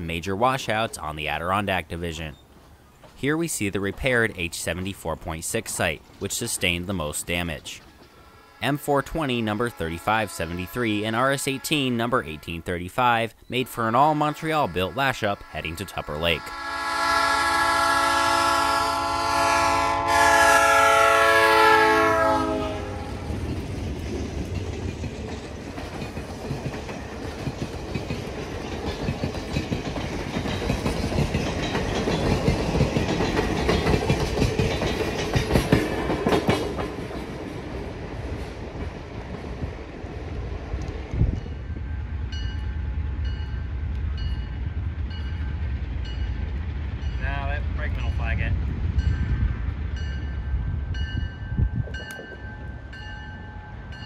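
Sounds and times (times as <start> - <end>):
passing train rumble: 0.0 - 12.8, 13.6 - 54.0
wheels clicking over rail joints: 7.3 - 8.4, 23.2 - 40.1
locomotive horn chord: 8.2 - 12.9, 13.6 - 23.4.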